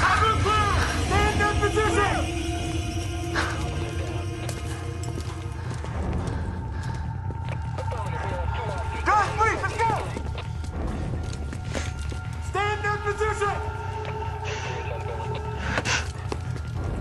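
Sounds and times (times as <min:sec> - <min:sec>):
tense film score drone: 0:00.0 - 0:17.0.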